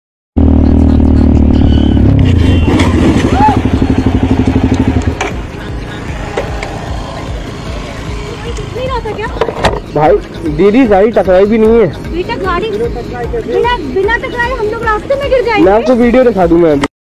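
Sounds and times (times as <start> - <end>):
motorcycle engine slowing and idling: 0.4 - 10.7.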